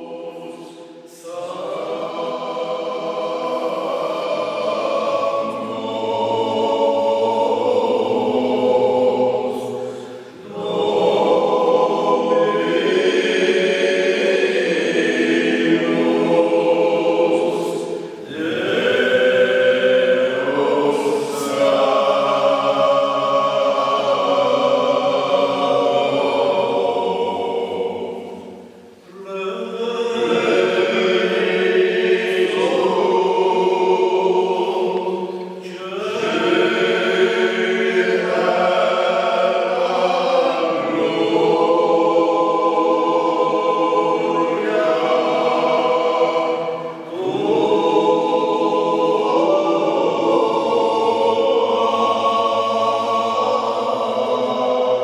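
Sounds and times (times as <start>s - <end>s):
men singing a cappella: 0.0s - 55.0s.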